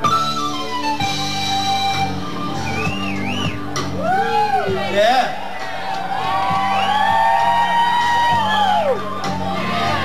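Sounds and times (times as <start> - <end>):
bass and drums: 0.0 - 10.0.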